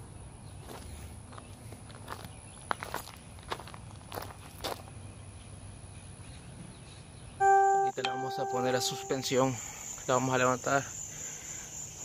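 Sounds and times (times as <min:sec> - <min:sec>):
footsteps on gravel: 0:00.6 - 0:04.9
loud steady tone: 0:07.4 - 0:09.6.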